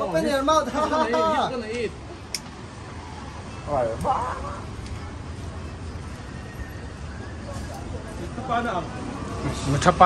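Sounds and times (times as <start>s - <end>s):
general street hum: 0.0s - 10.0s
low traffic rumble: 0.0s - 10.0s.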